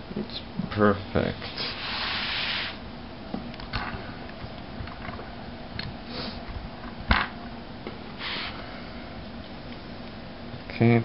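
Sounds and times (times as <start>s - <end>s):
breathy hisses: 6.0s - 6.5s, 8.2s - 9.2s.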